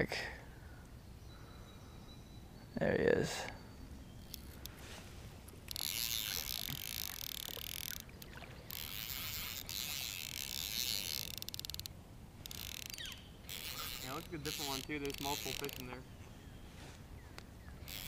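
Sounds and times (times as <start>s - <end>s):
reel clicks: 4.2s - 4.8s, 5.4s - 16.0s, 17.4s - 18.0s
fly reel buzzing: 4.2s - 16.0s, 17.8s - 18.0s.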